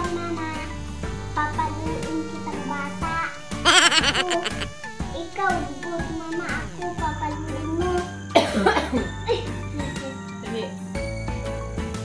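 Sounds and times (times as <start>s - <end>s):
background music with bass: 0.0s - 8.1s
woman coughing: 8.4s - 9.1s.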